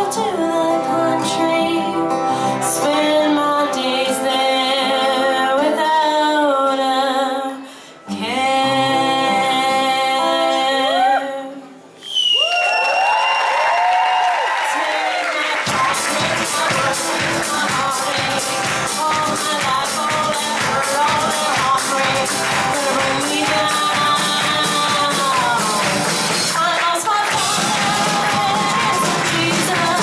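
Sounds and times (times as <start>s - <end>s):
woman singing into a microphone: 0.0s - 11.8s, 14.6s - 30.0s
acoustic guitar: 0.0s - 12.0s, 15.6s - 30.0s
long high whistle: 12.0s - 13.6s
crowd cheering: 12.0s - 19.1s, 20.4s - 30.0s.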